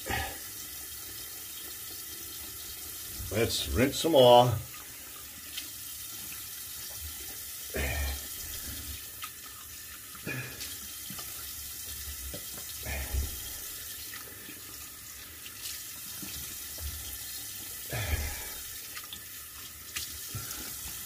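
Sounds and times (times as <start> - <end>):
water splashing on face: 7.7 - 21.0.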